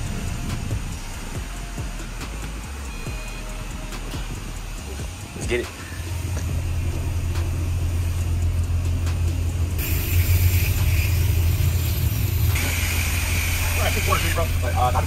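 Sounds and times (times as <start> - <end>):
pressure washer spraying water: 0.0 - 15.0
steady low hum: 0.0 - 15.0.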